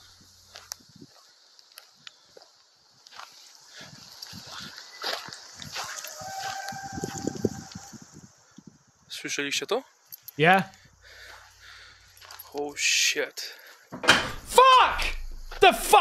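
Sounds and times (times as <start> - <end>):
rustling footsteps on dirt path: 0.0 - 8.3, 10.1 - 12.8.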